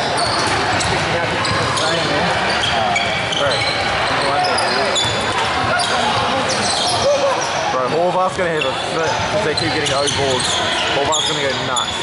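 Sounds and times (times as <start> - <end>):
sneakers squeaking on court: 0.0 - 7.7, 8.3 - 12.0
spectators chattering: 0.0 - 12.0
basketball bouncing: 0.1 - 2.2.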